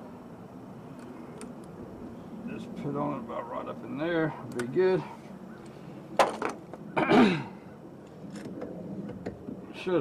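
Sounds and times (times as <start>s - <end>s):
person coughing: 7.0s - 7.5s.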